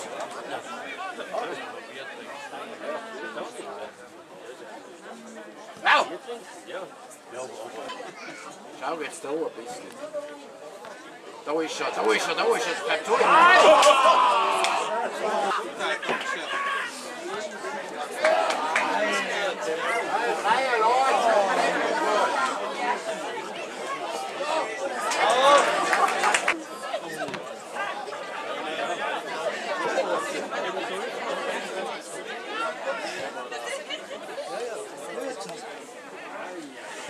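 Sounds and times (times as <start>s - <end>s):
indistinct chatter: 0.0s - 37.0s.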